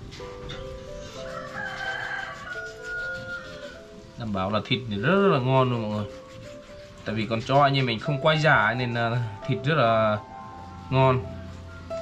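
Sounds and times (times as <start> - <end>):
background music with held notes: 0.0 - 12.0
rooster crowing: 1.1 - 4.0.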